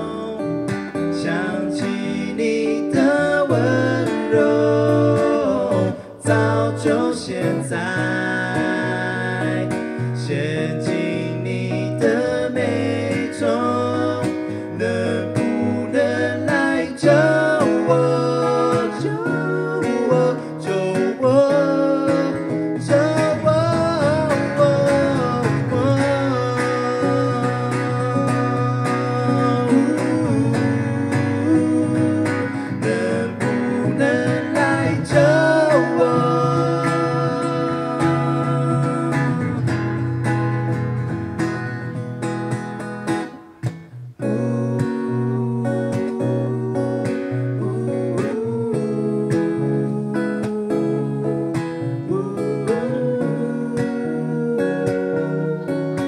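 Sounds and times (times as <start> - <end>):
men singing: 0.0 - 39.9, 44.2 - 56.0
acoustic guitars strumming: 0.0 - 56.0.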